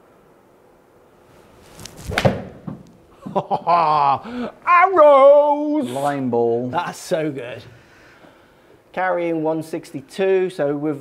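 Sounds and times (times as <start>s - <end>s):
golf club swish: 1.3s - 3.0s
club striking ball: 2.0s - 2.9s.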